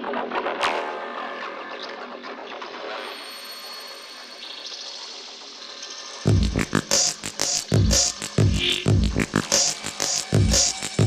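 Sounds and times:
electronic dance music: 0:06.3 - 0:11.0.

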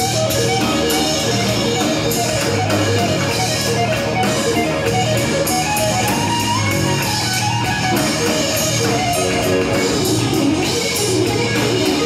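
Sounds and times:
electric guitar quick notes: 0:00.0 - 0:12.0
live blues-rock band: 0:00.0 - 0:12.0.

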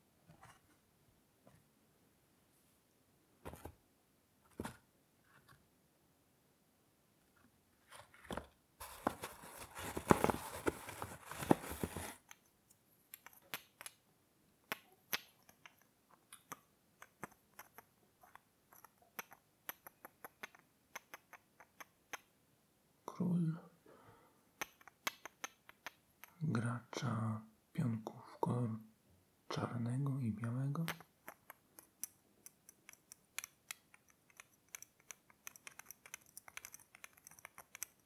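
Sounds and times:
wooden chess pieces clicking: 0:13.1 - 0:14.0, 0:14.7 - 0:22.3, 0:24.6 - 0:26.4, 0:30.8 - 0:38.0
chess pieces rubbing and clicking: 0:14.7 - 0:22.3, 0:24.6 - 0:26.4, 0:30.8 - 0:38.0.

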